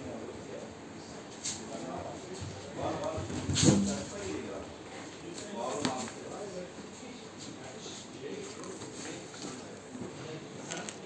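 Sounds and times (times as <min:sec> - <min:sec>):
low indistinct voices: 0:00.0 - 0:11.0.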